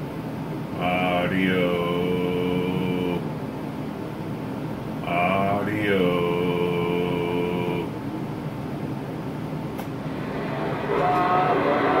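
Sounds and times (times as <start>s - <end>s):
steady pitched tone: 10.0s - 12.0s.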